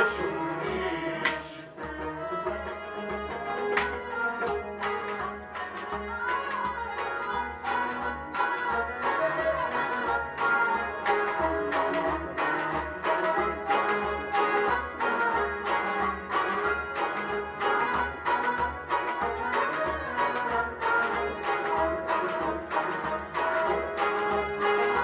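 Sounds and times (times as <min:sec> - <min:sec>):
hand drum on clay pot: 0:00.0 - 0:25.0
harmonium playing chords: 0:03.2 - 0:25.0.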